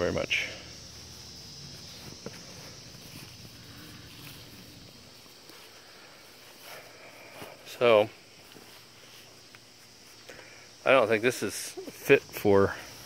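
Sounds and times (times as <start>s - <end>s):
crickets chirring: 0.0s - 13.0s
footsteps in grass: 0.0s - 13.0s.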